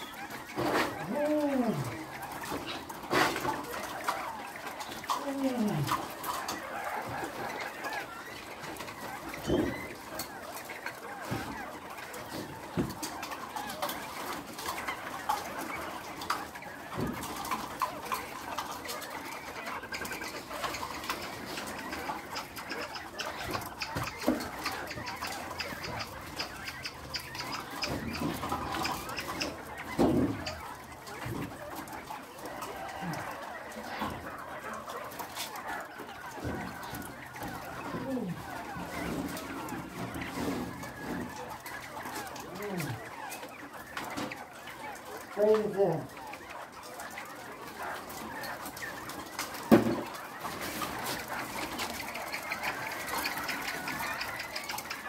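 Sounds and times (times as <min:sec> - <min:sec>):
poultry clucking: 0:00.0 - 0:55.0.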